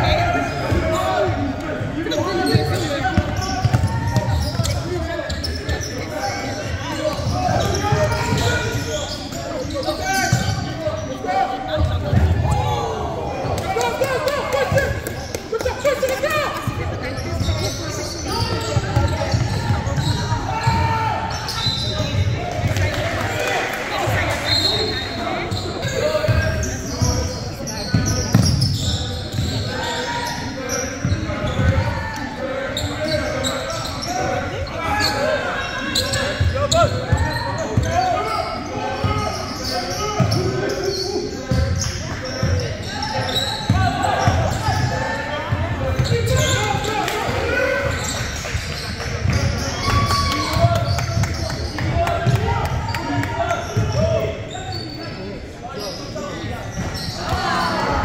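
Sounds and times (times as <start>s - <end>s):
sneaker squeaks: 0.0s - 12.8s, 13.4s - 23.2s, 24.0s - 58.0s.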